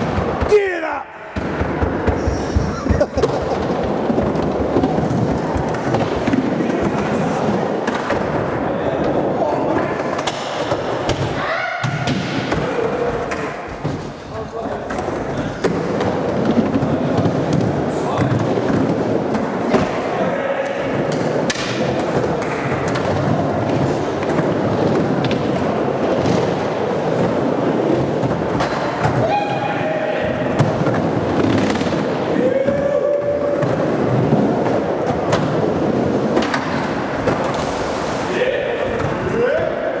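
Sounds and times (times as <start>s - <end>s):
hubbub of voices: 0.0s - 25.2s, 28.8s - 36.4s, 38.2s - 40.0s
skateboards rolling and clattering: 1.4s - 11.2s, 12.2s - 29.3s, 30.2s - 38.3s.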